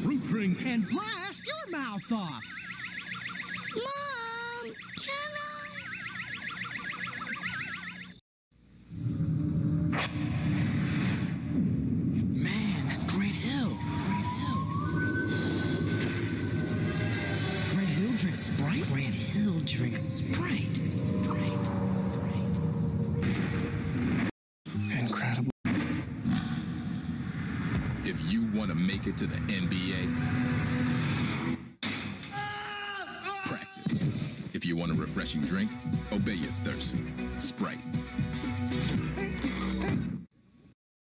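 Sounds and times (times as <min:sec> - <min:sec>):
synthesized warbling tones: 0:00.0 - 0:08.2, 0:12.4 - 0:25.8.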